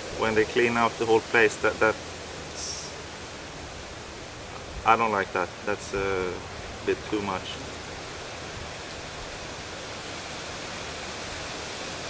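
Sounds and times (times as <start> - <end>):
outdoor background hiss: 0.0 - 12.0
man speaking: 0.2 - 3.0, 4.8 - 7.7.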